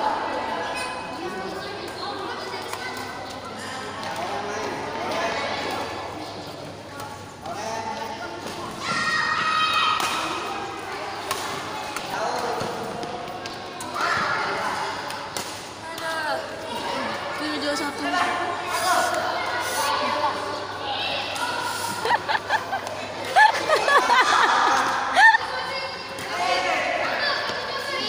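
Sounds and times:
voices calling out in hall: 0:00.0 - 0:28.0
rackets hitting shuttlecock: 0:09.7 - 0:10.5, 0:11.2 - 0:16.2.

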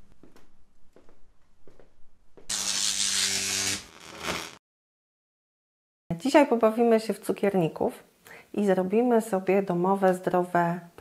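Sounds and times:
electric buzzing hum and hiss: 0:02.5 - 0:04.6.

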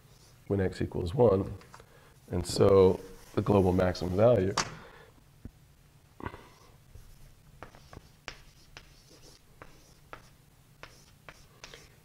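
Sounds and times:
faint writing on a board: 0:07.0 - 0:12.0.

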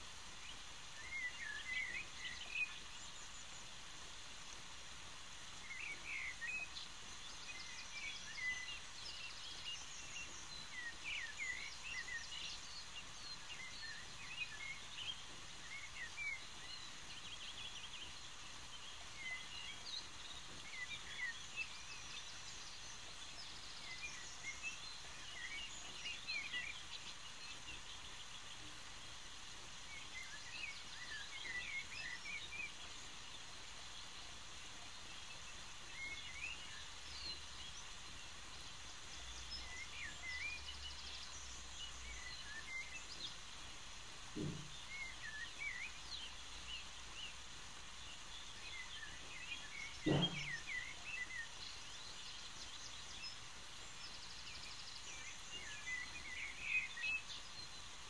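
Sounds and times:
birds chirping: 0:00.0 - 0:58.0
faint background hiss: 0:00.0 - 0:58.0.

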